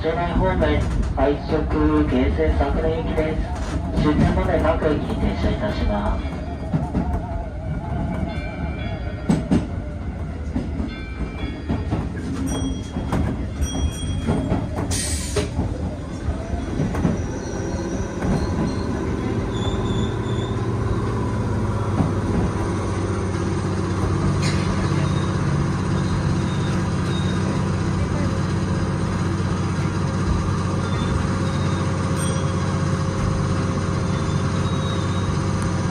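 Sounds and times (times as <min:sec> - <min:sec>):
rail and wheel noise: 0:00.0 - 0:35.9
train motor and gear hum: 0:00.0 - 0:35.9.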